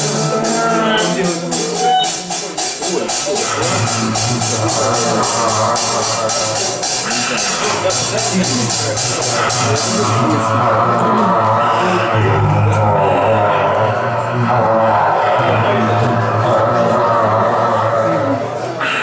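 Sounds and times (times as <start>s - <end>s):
cymbal beat: 0.0s - 18.0s.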